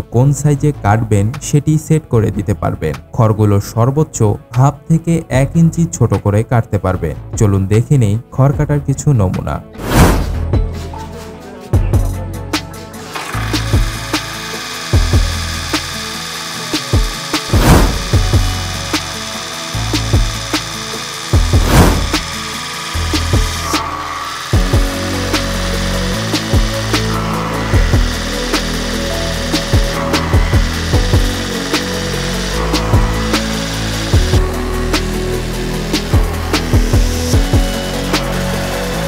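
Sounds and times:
background music: 0.0s - 39.0s
chaff cutter chopping straw: 9.8s - 10.5s, 13.0s - 39.0s.

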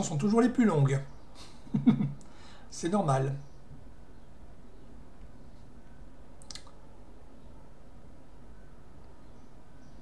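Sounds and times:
faint low hum and hiss: 0.0s - 10.0s.

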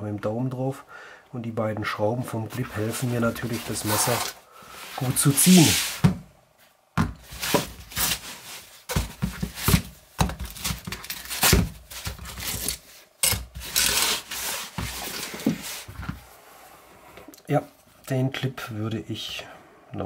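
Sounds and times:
fabric rubbing and scraping: 2.5s - 6.1s, 11.8s - 16.3s.

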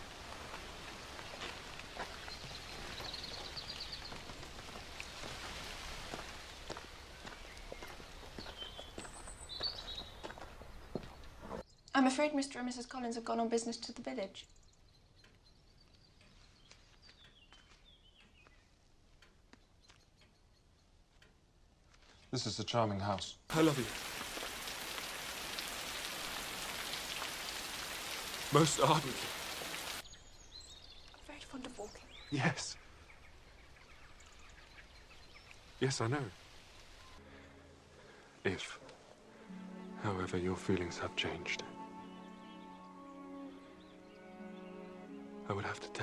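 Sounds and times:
steady hiss: 0.0s - 8.4s, 23.5s - 30.0s
rain falling: 0.0s - 11.4s, 23.5s - 30.0s, 33.2s - 37.2s.

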